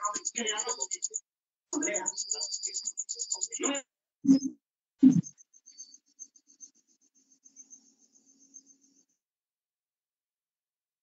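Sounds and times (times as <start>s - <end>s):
crickets chirping: 0.0s - 1.2s, 1.8s - 3.8s, 5.4s - 9.2s.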